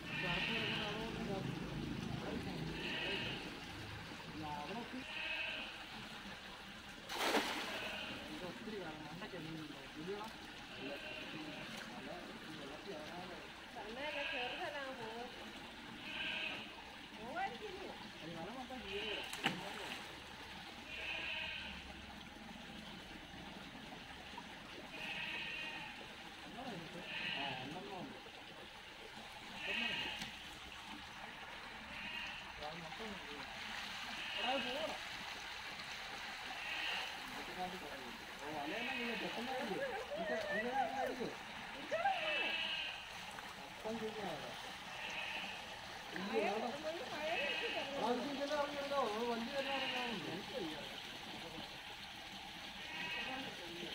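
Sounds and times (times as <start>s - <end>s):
river water splashing: 0.0s - 53.9s
sharp water slap: 7.1s - 7.8s.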